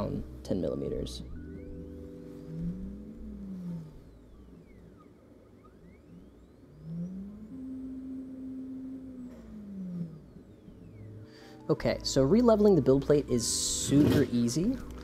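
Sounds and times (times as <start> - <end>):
stepper motor whine: 0.0 - 15.0.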